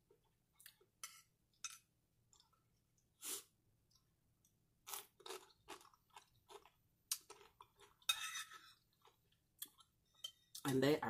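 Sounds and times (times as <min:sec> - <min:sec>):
person chewing crisp chips: 0:04.8 - 0:10.0.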